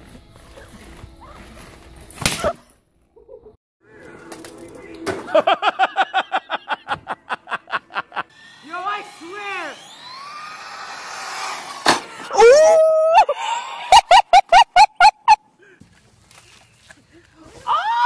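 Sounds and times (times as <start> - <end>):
high-pitched human shriek: 12.2 - 14.2, 17.6 - 18.0.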